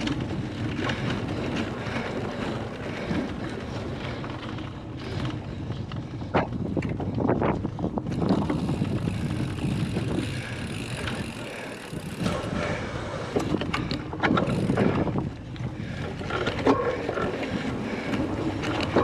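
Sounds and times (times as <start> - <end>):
bike rattling and knocking: 0.0 - 19.0
knobby tyres rumbling over turf: 0.0 - 19.0
wind buffeting microphone: 0.0 - 19.0.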